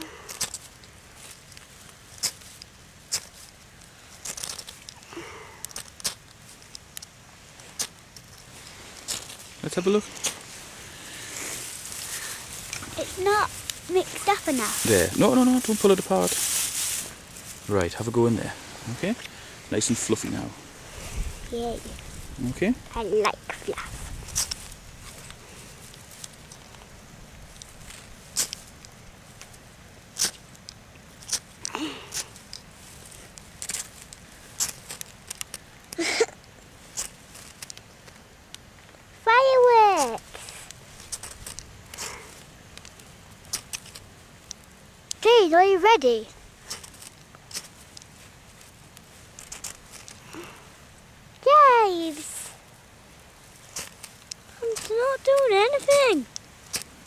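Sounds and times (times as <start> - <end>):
flint scraped with metal striker: 0.3 - 5.0, 27.6 - 29.5, 30.2 - 31.5, 32.1 - 35.6.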